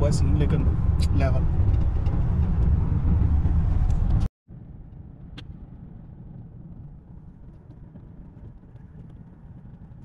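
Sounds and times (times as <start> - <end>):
car interior road rumble: 0.0 - 10.0.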